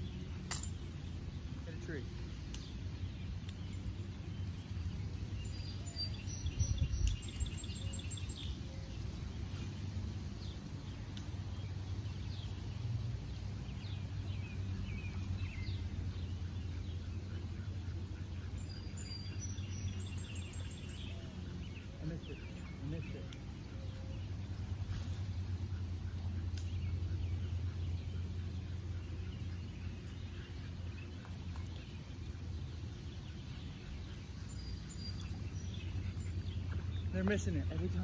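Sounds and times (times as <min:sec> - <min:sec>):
low background rumble: 0:00.0 - 0:38.0
songbirds chirping and trilling: 0:00.0 - 0:38.0.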